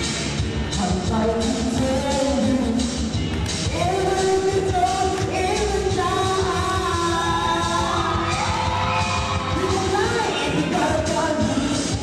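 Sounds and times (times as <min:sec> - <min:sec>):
music with steady beat: 0:00.0 - 0:12.0
person singing show tune: 0:00.7 - 0:12.0.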